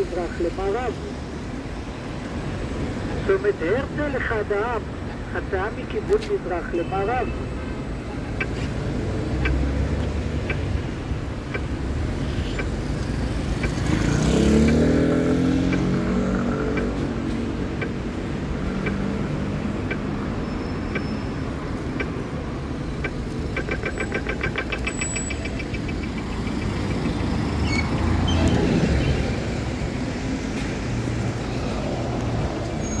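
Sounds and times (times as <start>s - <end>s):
low rumble of traffic engines: 0.0s - 33.0s
vehicle passing: 12.8s - 20.3s
vehicle pulling away: 13.6s - 16.8s.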